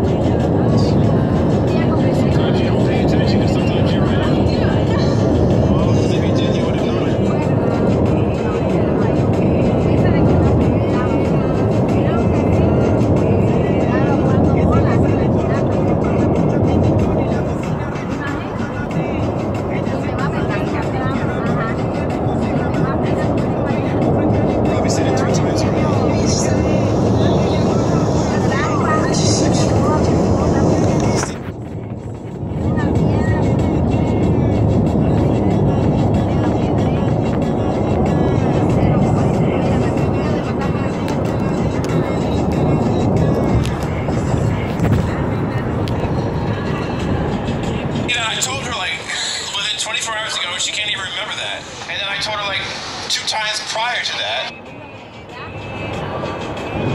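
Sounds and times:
indistinct voices: 0.0 - 31.7, 32.4 - 56.9
faint music: 0.0 - 56.9
road and engine noise in car: 0.0 - 56.9.

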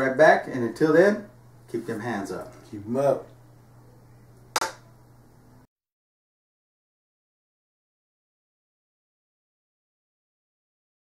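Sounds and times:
low room hum: 0.0 - 5.7.

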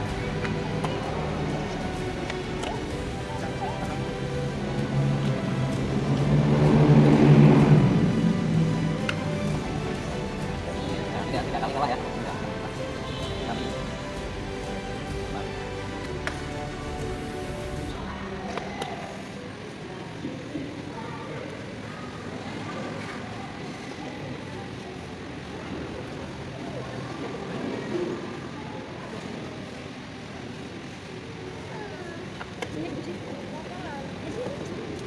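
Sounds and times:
background music: 0.0 - 19.9
indistinct crowd voices: 0.0 - 35.0.

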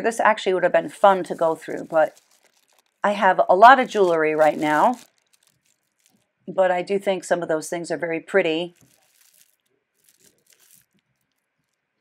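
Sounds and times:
beaded necklaces rustling and clicking: 1.0 - 6.4, 8.7 - 12.0.

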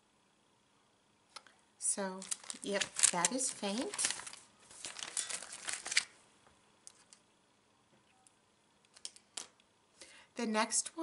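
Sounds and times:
paper rustling and crinkling: 2.2 - 6.2.

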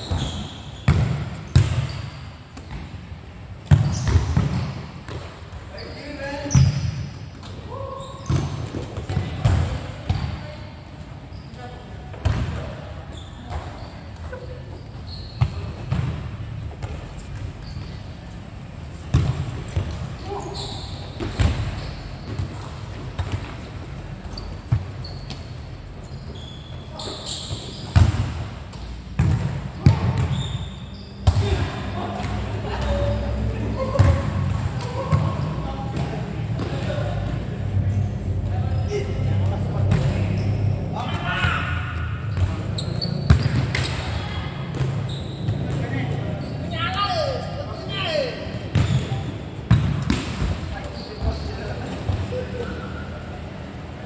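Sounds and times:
ball kicked and bouncing: 19.1 - 20.0.

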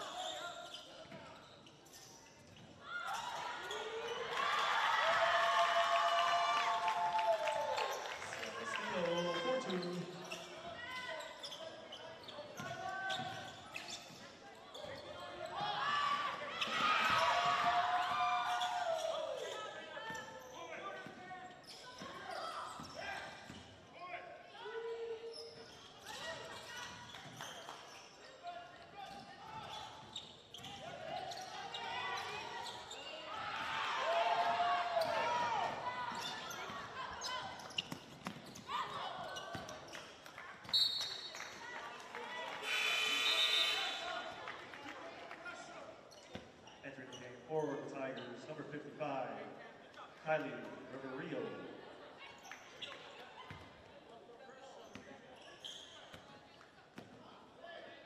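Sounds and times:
voices in a large hall: 0.0 - 58.0.

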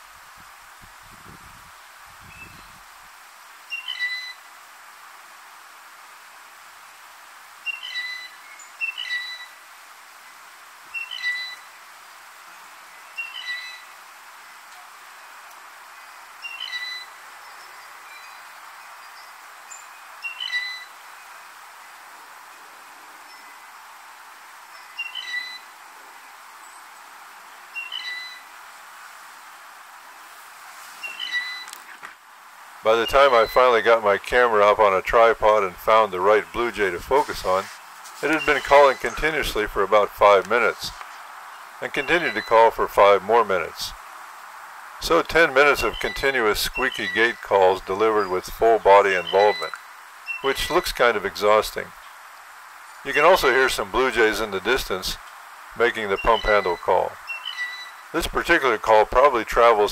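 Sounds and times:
steady hiss: 0.0 - 59.9
blue jay creaky squeak call: 3.7 - 4.4, 7.7 - 9.6, 11.0 - 11.7, 13.2 - 13.9, 16.4 - 17.1, 20.2 - 21.0, 24.7 - 25.7, 27.8 - 28.5, 31.0 - 32.0, 42.0 - 42.7, 49.2 - 51.0, 56.2 - 58.1.

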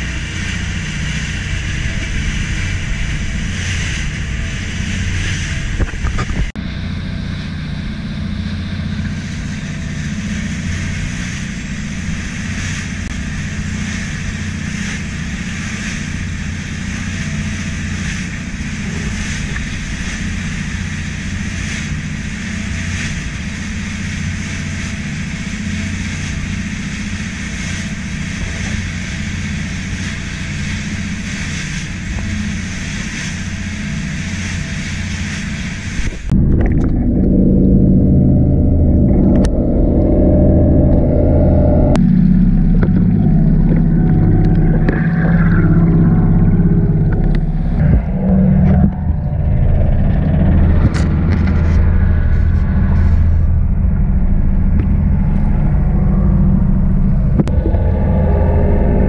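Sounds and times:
boat engine running: 0.0 - 59.0
muffled low rumble: 0.0 - 59.0.

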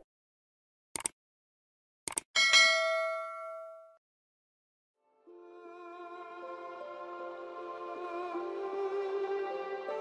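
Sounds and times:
bright bell ding: 2.4 - 4.0.

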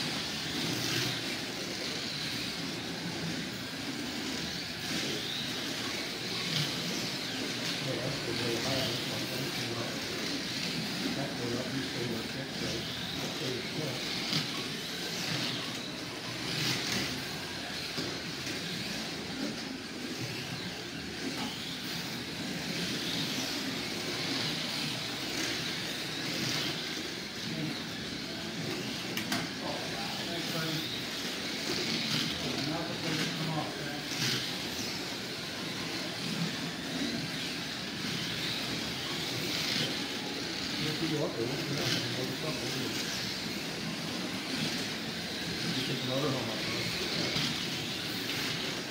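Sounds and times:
slot car motors whining: 0.0 - 48.9
indistinct voices: 5.0 - 48.9.

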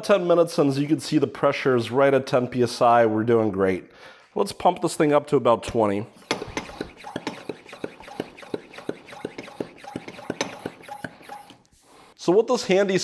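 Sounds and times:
hand pump strokes: 6.2 - 12.1.

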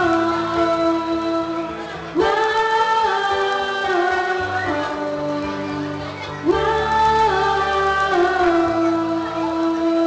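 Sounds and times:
girl singing into a microphone: 0.0 - 10.0
musical accompaniment: 0.0 - 10.0.

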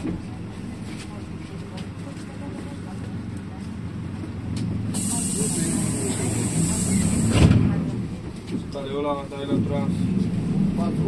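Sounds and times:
vehicle engine and road rumble: 0.0 - 11.0
voices talking: 4.9 - 8.0
high hiss: 5.0 - 7.4.

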